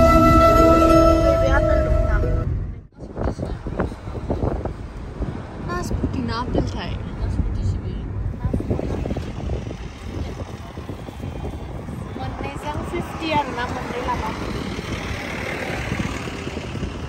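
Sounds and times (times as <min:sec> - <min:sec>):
outdoor rumble: 0:00.0 - 0:17.0
indistinct voices talking: 0:05.5 - 0:17.0.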